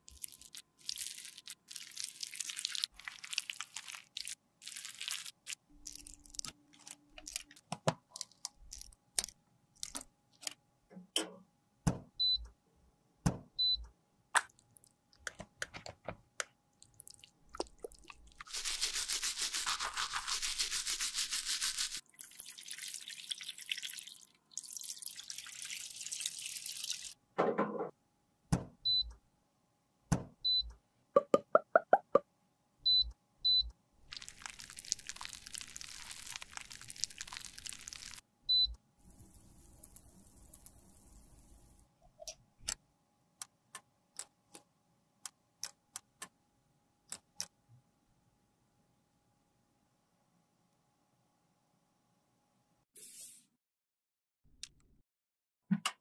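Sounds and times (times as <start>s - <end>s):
brush scrubbing a palette: 18.3s - 22.0s.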